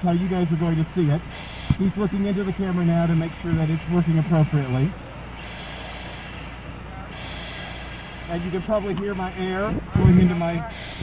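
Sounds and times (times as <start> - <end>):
breathing regulator hissing: 0.0 - 11.0.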